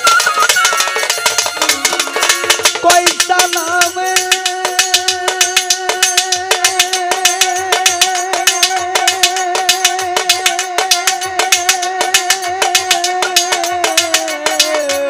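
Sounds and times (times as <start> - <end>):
folk drum beat: 0.0 - 15.0
sharp high percussion strokes: 0.0 - 15.0
violin with vibrato: 0.0 - 15.0.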